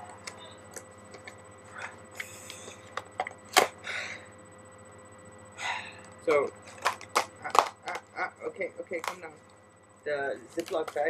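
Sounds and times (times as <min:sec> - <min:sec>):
packaging crinkling and rustling: 0:10.4 - 0:11.0.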